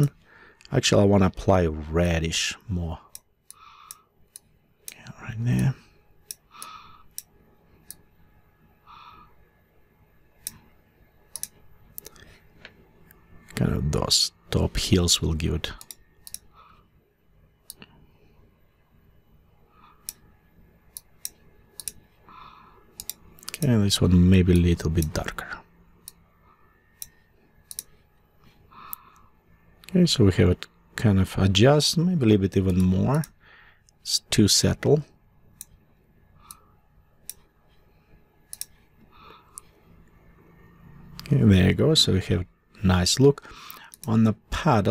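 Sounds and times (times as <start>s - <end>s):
computer mouse clicking: 11.3s - 13.2s, 15.8s - 16.8s, 19.8s - 20.3s, 20.9s - 23.7s, 27.0s - 28.0s, 36.4s - 37.8s, 38.5s - 39.7s, 43.6s - 44.1s.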